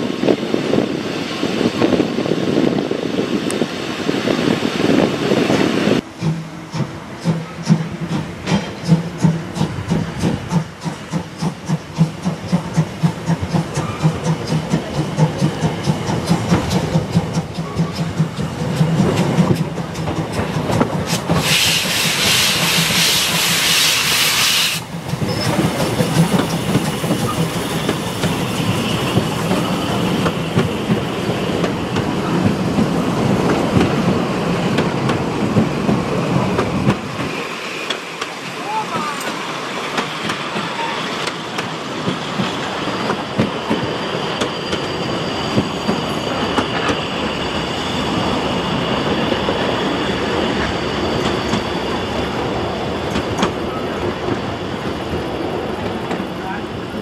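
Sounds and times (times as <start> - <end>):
steam hissing: 4.1 - 57.0
steam locomotive chuffing: 4.2 - 57.0.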